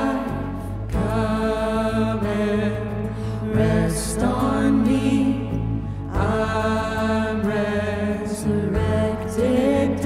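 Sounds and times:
acoustic guitar: 0.0 - 10.0
keyboard: 0.0 - 10.0.

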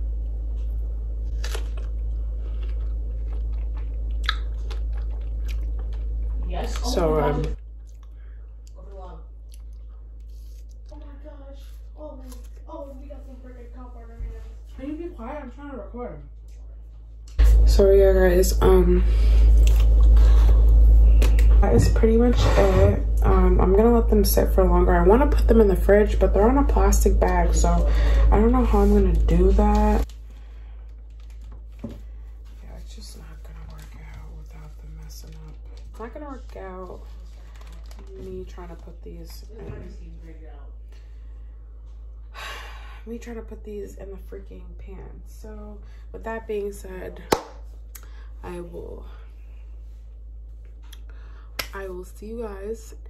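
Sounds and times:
low hum: 0.0 - 53.0
person chewing: 0.6 - 6.9, 7.6 - 8.8, 9.4 - 11.0, 19.4 - 21.5
woman's voice: 6.4 - 7.6, 10.9 - 16.7, 17.4 - 19.6, 21.4 - 30.1, 32.6 - 40.8, 43.0 - 47.3, 48.4 - 49.3, 51.6 - 53.0.

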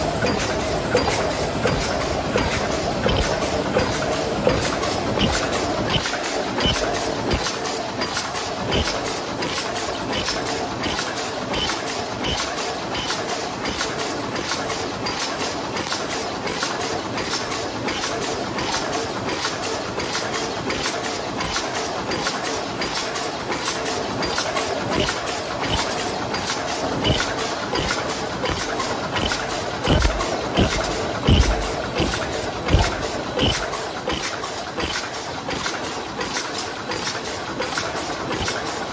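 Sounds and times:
box forming machine clattering: 0.0 - 38.9.

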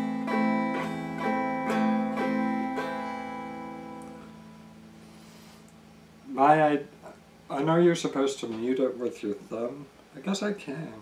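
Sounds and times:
guitar note ringing: 0.0 - 8.8.

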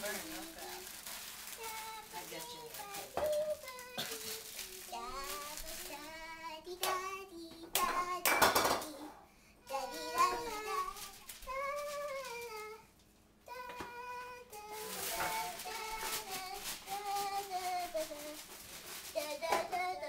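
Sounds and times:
rustling noise: 0.0 - 8.2, 9.7 - 12.8, 13.5 - 20.0
girls singing and chattering: 1.6 - 12.9, 13.5 - 18.4.

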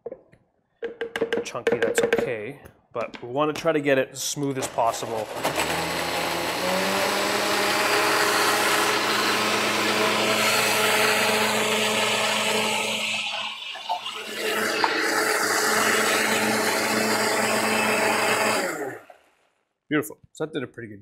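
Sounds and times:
blender running: 4.6 - 19.2.

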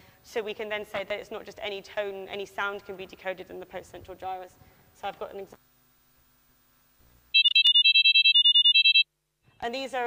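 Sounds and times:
short high electronic beeps: 7.4 - 9.0.

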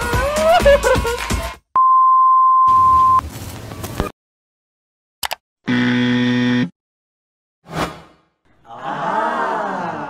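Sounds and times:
low buzzer tone: 5.7 - 6.7.

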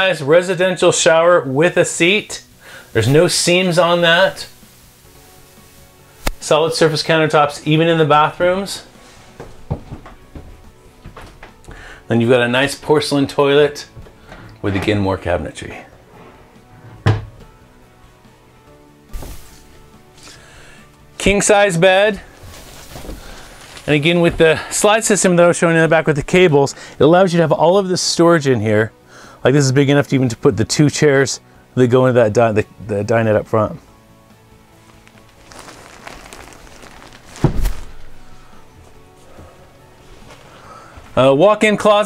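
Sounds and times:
wooden cabinet door shutting: 16.8 - 17.4
bedding rustling: 19.1 - 26.4, 34.6 - 41.4.

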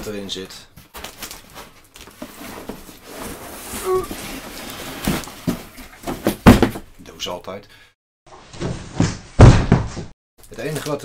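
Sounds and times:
cardboard box rustling and scraping: 1.6 - 6.3.

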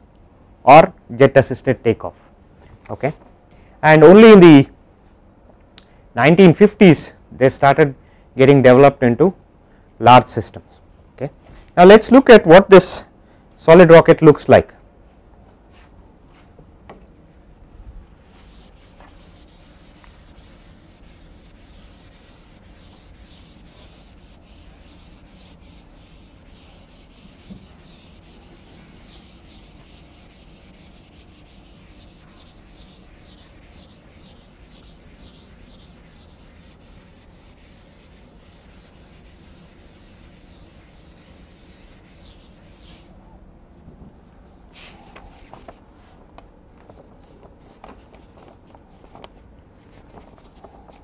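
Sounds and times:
duster wiping chalkboard: 18.1 - 43.1.

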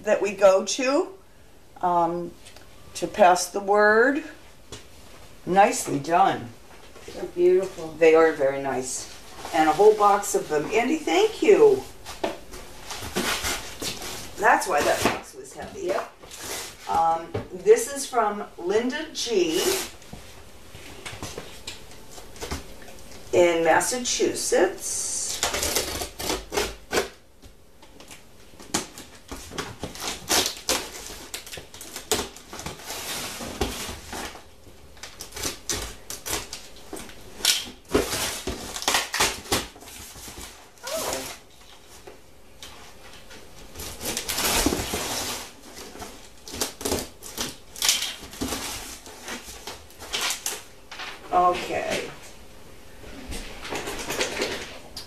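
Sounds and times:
packing tape ripping: 25.2 - 27.2, 28.0 - 34.4, 35.0 - 41.4, 43.8 - 50.7
paper rustling and crinkling: 27.8 - 52.0.

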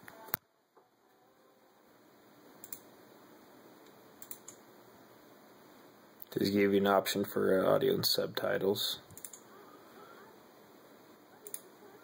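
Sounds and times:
faint steady hiss: 0.0 - 12.0
computer mouse clicks: 2.6 - 2.9, 3.8 - 4.6, 9.1 - 9.5, 11.4 - 11.7.

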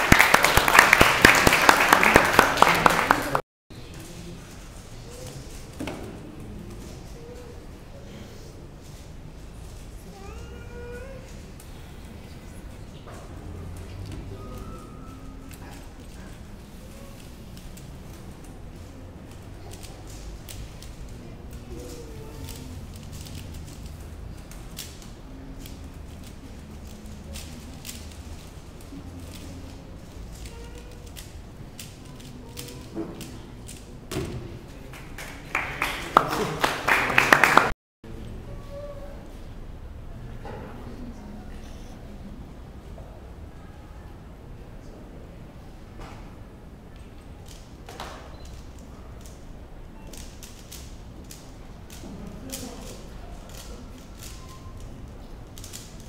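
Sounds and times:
sharp claps: 0.0 - 3.4, 34.9 - 37.8.

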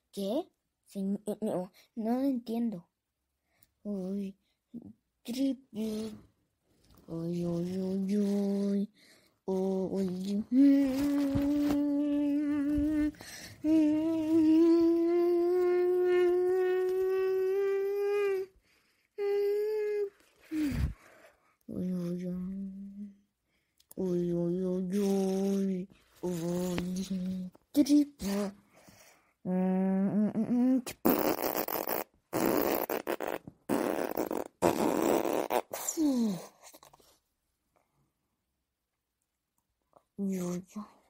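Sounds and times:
harsh rasping vocal bursts: 30.9 - 36.0.

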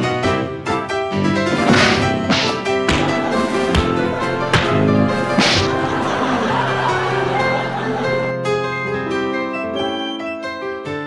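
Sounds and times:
background music: 0.0 - 11.0
loud swishing hits: 1.5 - 6.0
sharp crack: 1.5 - 6.2.

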